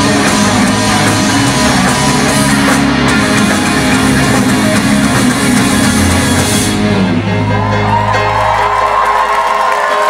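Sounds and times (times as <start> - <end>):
electric guitar: 0.0 - 9.0
live rock band playing: 0.0 - 9.4.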